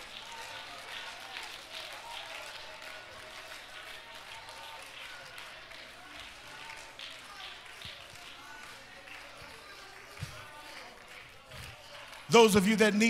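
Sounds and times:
people clapping: 0.0s - 13.0s
congregation praying aloud: 12.1s - 13.0s.

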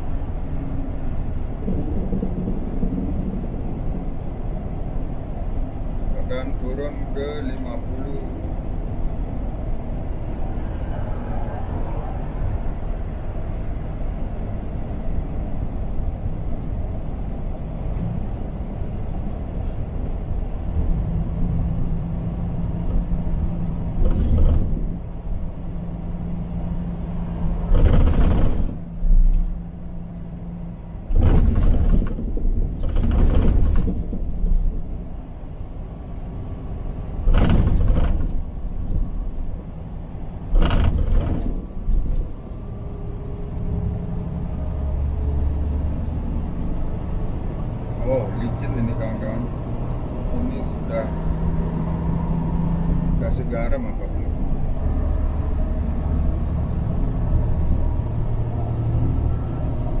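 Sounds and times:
truck engine and road rumble: 0.0s - 60.0s.

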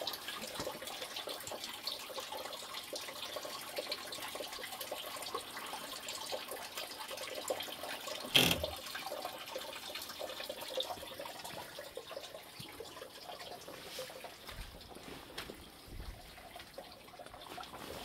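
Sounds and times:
water trickling and splashing: 0.0s - 18.0s.

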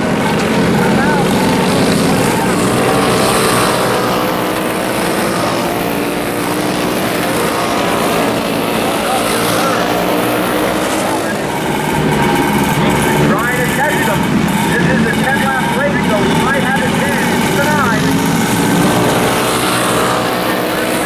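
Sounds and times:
kart engines racing: 0.0s - 21.0s.

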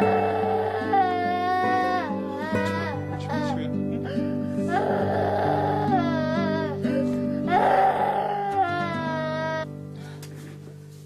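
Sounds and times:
musical accompaniment: 0.0s - 11.0s.

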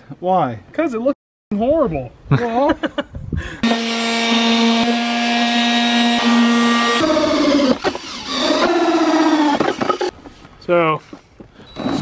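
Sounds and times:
cordless drill motor whine: 3.6s - 10.1s
hole saw teeth cutting plastic: 6.1s - 10.1s.

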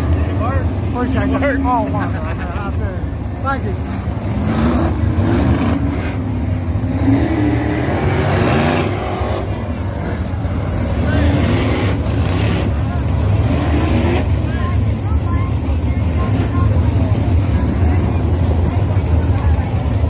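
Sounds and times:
race car engines rumbling: 0.0s - 20.0s.

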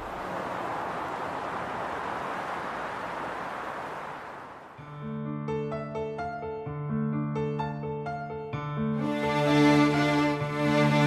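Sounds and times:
distant city traffic rushing: 0.0s - 4.9s.

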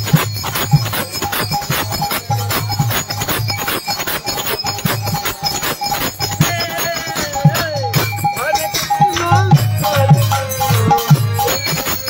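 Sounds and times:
harmonium note: 0.0s - 12.0s
jangling metal percussion: 0.0s - 12.0s.

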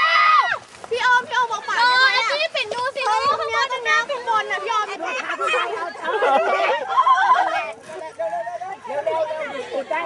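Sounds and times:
group of people chattering: 0.9s - 10.0s.

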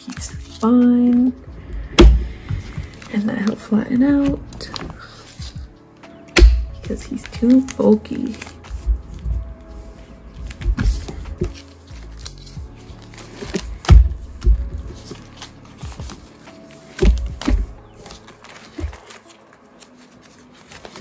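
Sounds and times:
plastic binder pages rustling: 0.0s - 1.3s, 2.5s - 21.0s.

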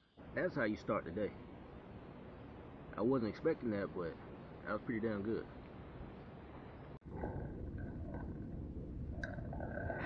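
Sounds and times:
low rumbling noise: 3.9s - 10.0s.

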